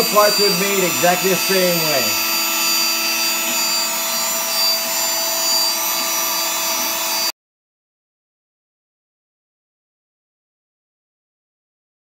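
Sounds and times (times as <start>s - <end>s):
router spindle whining: 0.0s - 7.3s.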